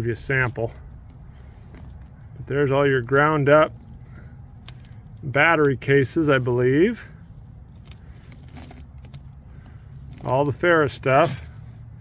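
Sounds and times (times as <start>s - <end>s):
low steady rumble: 0.0s - 12.0s
metal fragments clinking in hand: 3.8s - 10.4s.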